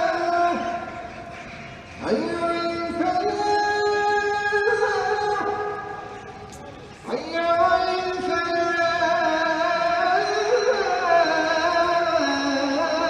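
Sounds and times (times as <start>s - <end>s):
call to prayer sung: 0.0s - 13.0s.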